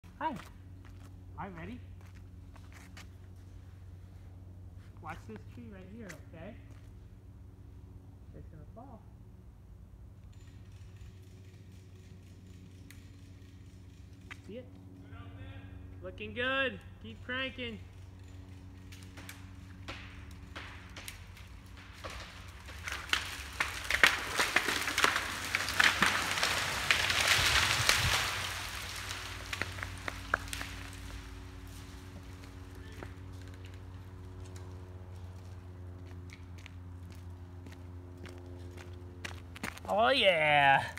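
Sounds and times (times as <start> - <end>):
tree falling through branches: 17.8 - 40.2
wood cracking: 18.0 - 40.0.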